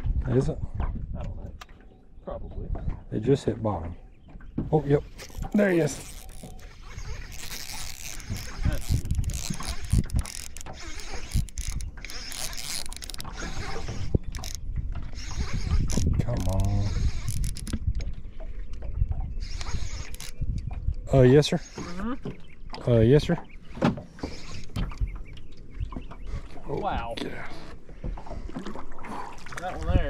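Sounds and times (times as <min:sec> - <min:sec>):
fishing reel clicking: 0:05.2 - 0:17.8, 0:19.4 - 0:20.4.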